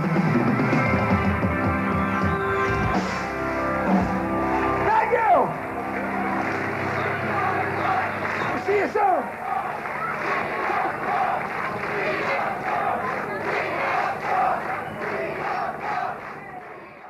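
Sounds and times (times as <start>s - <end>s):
crowd cheering and chanting: 0.0s - 17.0s.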